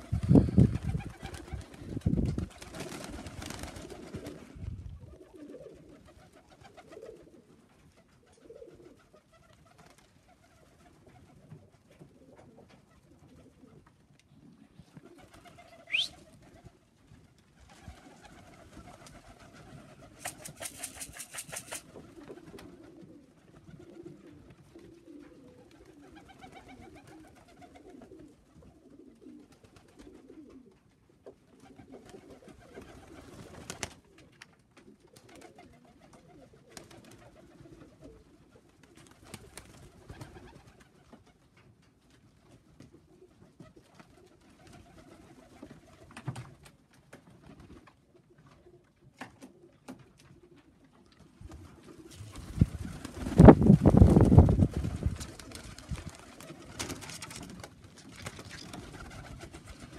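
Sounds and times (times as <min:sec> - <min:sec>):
pigeons cooing: 0:00.0 - 0:09.7, 0:10.3 - 0:16.7, 0:17.8 - 0:30.8, 0:31.6 - 0:34.3
wings flapping: 0:00.0 - 0:14.0, 0:15.0 - 0:24.2, 0:25.0 - 0:28.3, 0:31.6 - 0:41.3, 0:43.7 - 0:47.9, 0:51.4 - 0:59.9.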